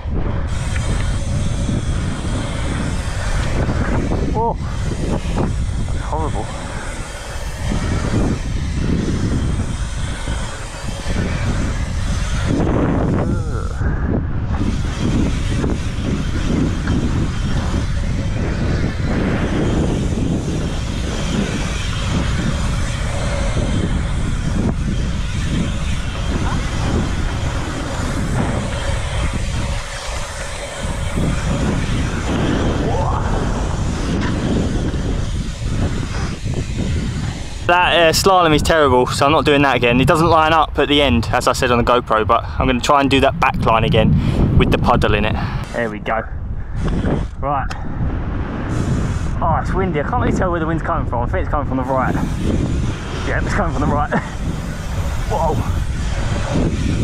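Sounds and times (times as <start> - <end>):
bike tyres rolling on asphalt: 0.0 - 57.0
wind buffeting camera microphone: 0.0 - 57.0.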